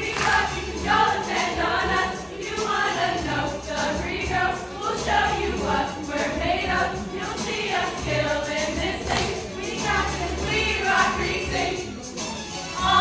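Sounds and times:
women singing together: 0.0 - 12.0, 12.8 - 13.0
backing music with strong bass: 0.0 - 13.0.

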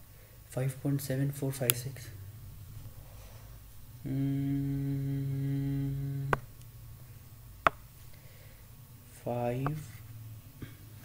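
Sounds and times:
man humming one pitch: 4.0 - 6.5.

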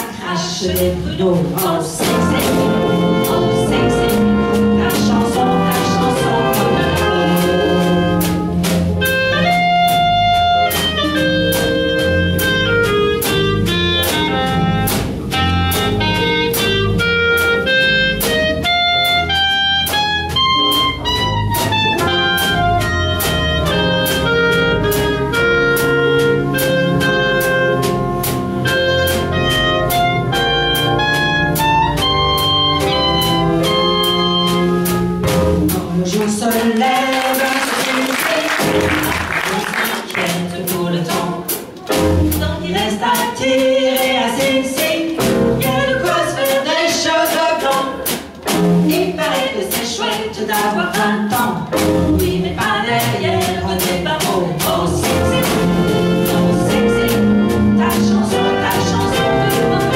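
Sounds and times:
bass: 0.0 - 59.9
piano: 0.0 - 59.9
horns playing melody: 2.0 - 36.0, 37.0 - 39.9, 54.7 - 59.9.

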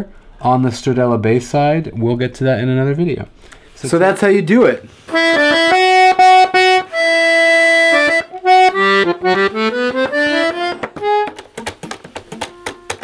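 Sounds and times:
piano accordion playing: 5.0 - 13.0.

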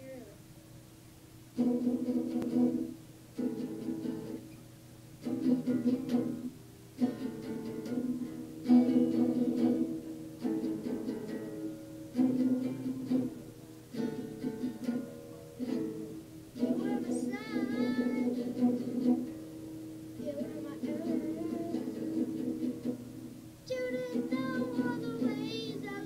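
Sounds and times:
acoustic guitar strumming chords: 1.5 - 26.0.

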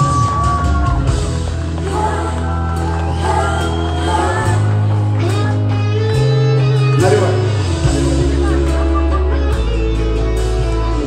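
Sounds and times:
guitar: 0.0 - 11.0
steady bass line: 0.0 - 11.0.

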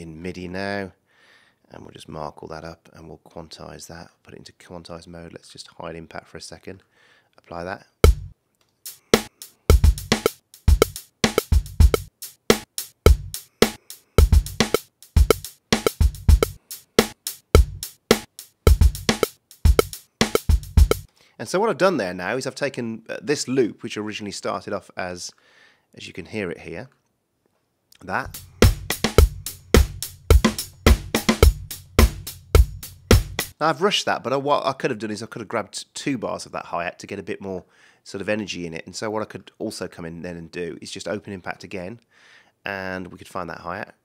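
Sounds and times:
kick drum thumps: 8.0 - 8.3, 9.2 - 21.1, 28.3 - 33.5
snare and hi-hat hits: 8.0 - 21.1, 28.3 - 33.6.

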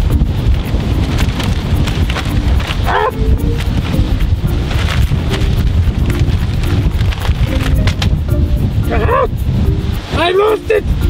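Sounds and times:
paper map crackling and flapping: 0.0 - 8.2
wind buffeting microphone: 0.0 - 11.0.

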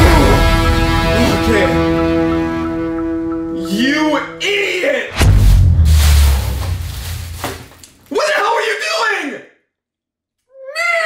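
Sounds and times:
deep bass impact boom with hiss: 5.2 - 7.6.

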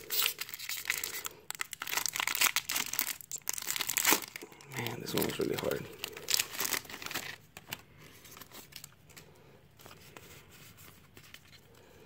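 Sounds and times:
foil wrapper crinkling and tearing: 0.0 - 9.0.

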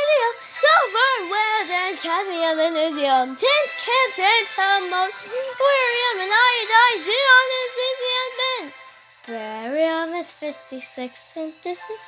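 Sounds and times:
high-pitched voice singing: 0.0 - 12.0
music: 0.0 - 12.0.

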